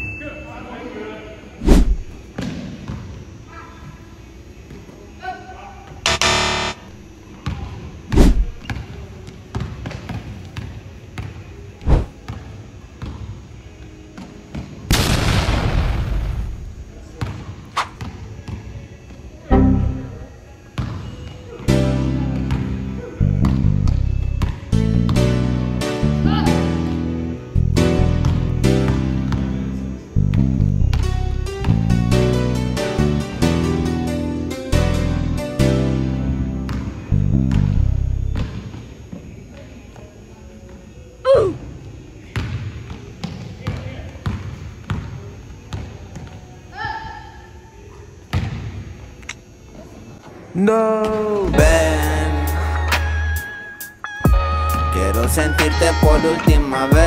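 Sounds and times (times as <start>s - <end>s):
rush of noise: 1.6s - 2.2s, 11.9s - 12.1s
basketball bouncing on wooden court: 42.4s - 46.4s.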